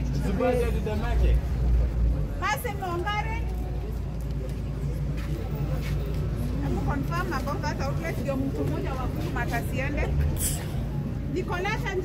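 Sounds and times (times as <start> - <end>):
people talking: 2.3 - 10.1.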